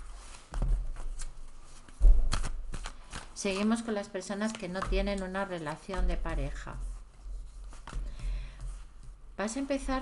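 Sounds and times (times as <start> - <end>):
cards being shuffled: 0.2 - 6.1.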